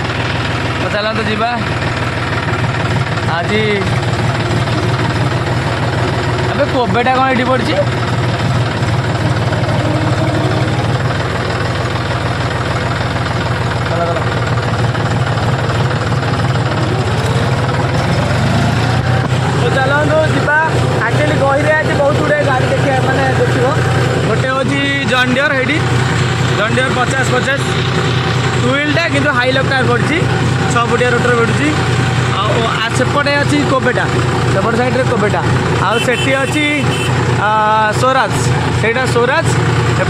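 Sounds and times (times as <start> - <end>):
tractor diesel engine droning: 0.0 - 40.0.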